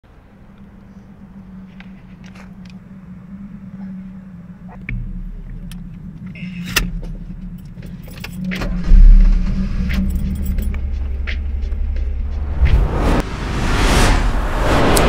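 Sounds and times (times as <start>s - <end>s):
car engine cranking and running: 4.5s - 12.3s
keys jangling in ignition: 6.5s - 9.1s, 9.8s - 11.0s.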